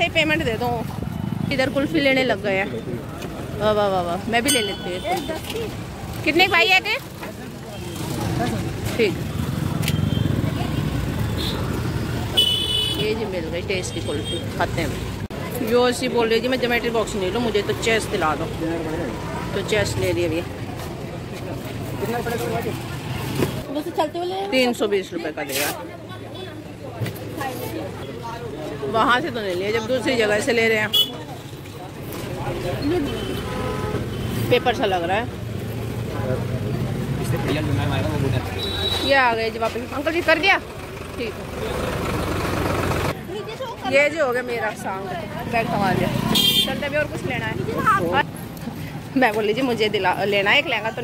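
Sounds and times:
street traffic: 0.0 - 51.0
vehicle engine rumbling: 26.7 - 51.0
vehicle engine running: 39.7 - 43.2.

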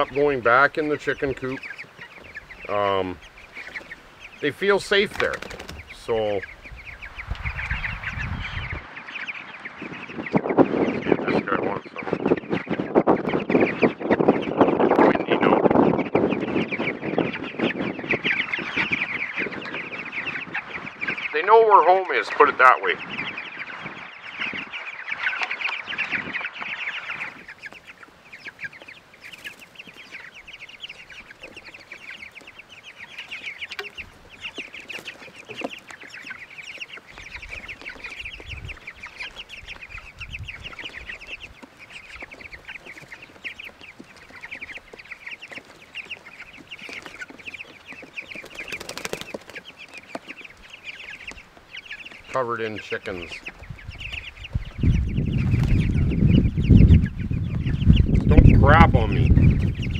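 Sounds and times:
chicks peeping: 0.0 - 59.9.

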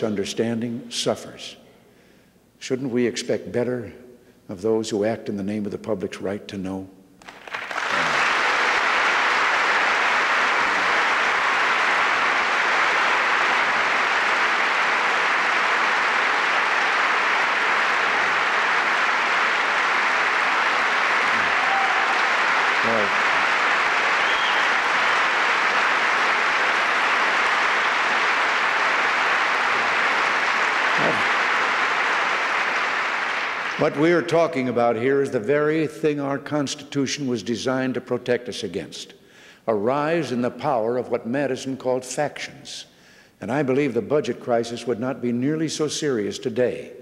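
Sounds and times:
audience applauding: 7.2 - 34.3.

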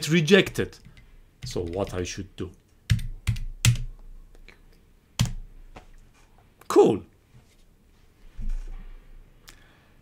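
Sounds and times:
computer keyboard keystrokes: 2.9 - 3.9.

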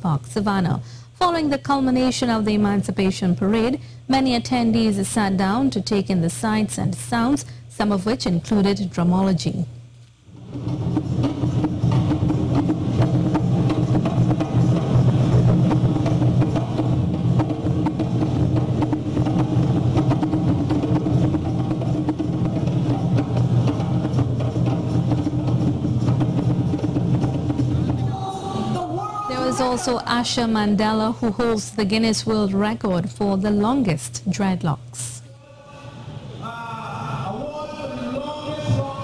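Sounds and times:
hand drums playing: 10.3 - 32.4.

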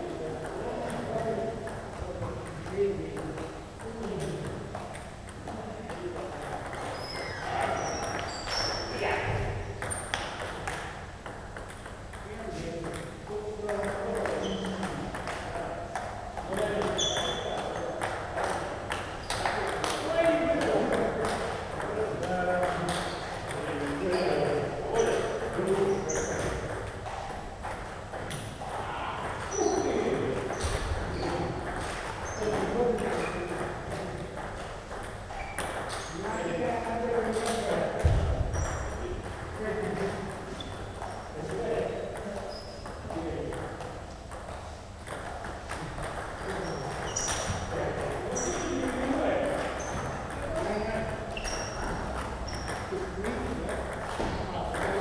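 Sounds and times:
people talking: 0.0 - 4.7, 12.2 - 18.7, 19.4 - 26.8, 28.6 - 34.4, 36.1 - 40.6, 41.4 - 43.8, 46.4 - 51.4, 52.8 - 55.0
table tennis ball knocking: 9.8 - 28.6, 30.3 - 36.0, 36.8 - 55.0.

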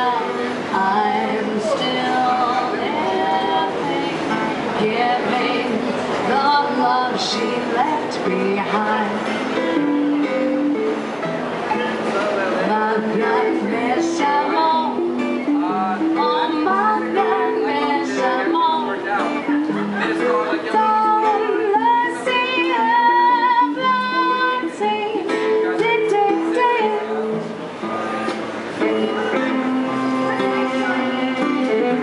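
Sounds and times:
two women singing in harmony: 0.0 - 10.1, 12.6 - 19.0, 20.7 - 27.2
acoustic guitar strumming: 0.0 - 32.0
plucked violin: 0.0 - 32.0.

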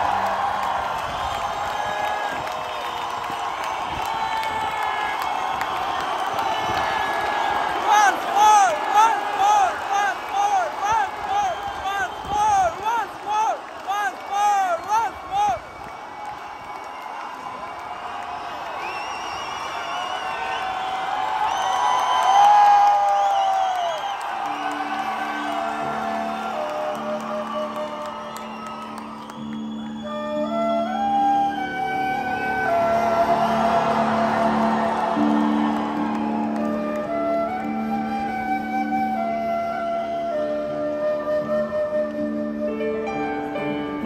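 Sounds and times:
crowd cheering and whooping: 0.0 - 44.0
band playing: 30.1 - 39.4.

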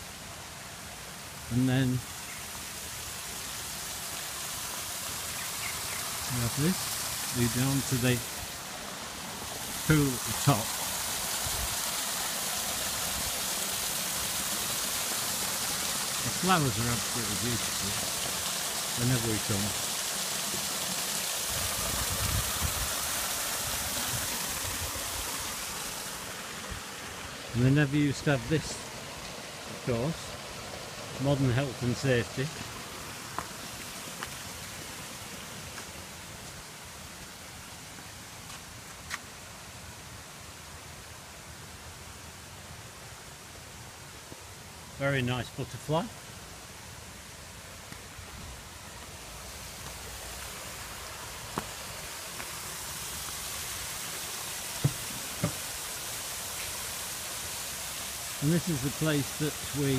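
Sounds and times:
outdoor background hiss: 0.0 - 59.9
waterfall splashing into pond: 0.0 - 59.9.

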